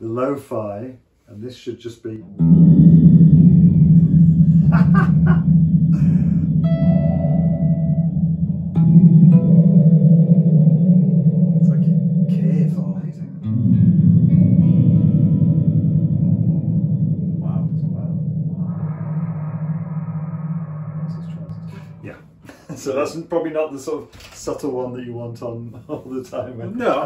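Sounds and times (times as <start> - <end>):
electric guitar chords with reverb: 2.3 - 22.5.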